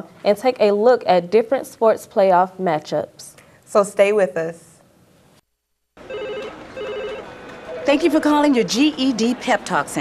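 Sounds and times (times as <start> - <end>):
telephone ringing electronic trill: 6.0 - 8.0.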